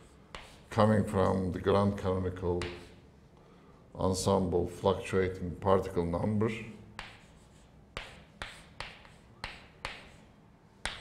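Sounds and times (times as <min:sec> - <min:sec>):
chalk tapping on blackboard: 0:00.0 - 0:00.7, 0:02.5 - 0:03.0, 0:07.0 - 0:11.0
chalk scratching: 0:00.0 - 0:01.3, 0:02.5 - 0:03.0, 0:07.0 - 0:11.0.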